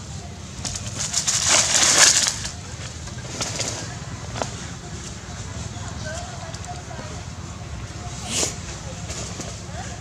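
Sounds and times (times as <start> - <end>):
dry leaves rustling and crackling: 0.5 - 7.0.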